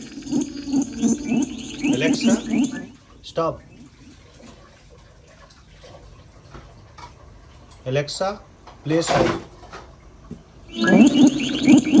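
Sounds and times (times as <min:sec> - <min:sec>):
smart speaker electronic warble: 0:00.0 - 0:04.0, 0:10.7 - 0:12.0.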